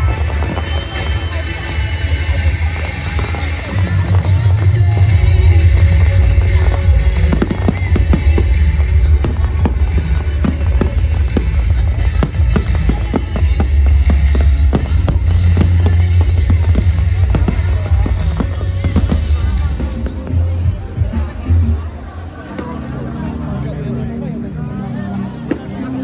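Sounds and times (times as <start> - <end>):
fireworks bangs and crackles: 0.0 - 21.9
loud music with heavy bass: 0.0 - 24.7.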